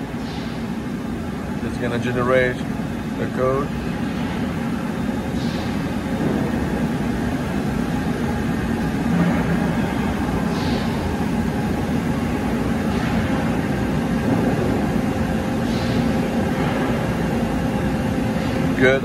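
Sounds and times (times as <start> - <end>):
machinery rumbling: 0.0 - 19.0.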